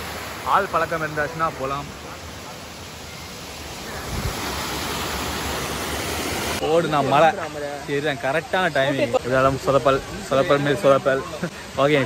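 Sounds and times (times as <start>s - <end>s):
water rushing over rocks: 0.0s - 12.0s.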